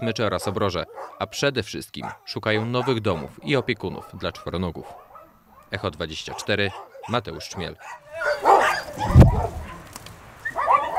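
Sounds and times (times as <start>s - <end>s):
puppies yelping: 0.0s - 10.9s
loud low thump: 9.0s - 9.6s.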